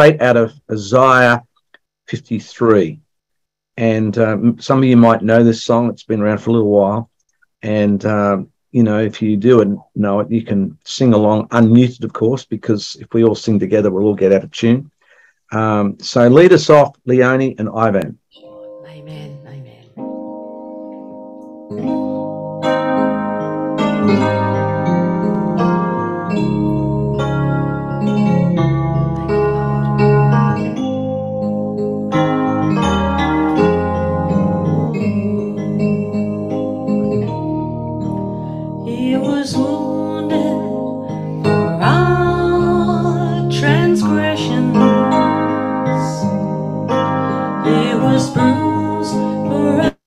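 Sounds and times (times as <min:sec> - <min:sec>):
instrumental accompaniment: 0:18.3 - 0:50.0
keyboard playing held chords: 0:18.4 - 0:50.0
woman singing into microphone: 0:38.8 - 0:40.9, 0:42.0 - 0:45.2, 0:47.6 - 0:50.0.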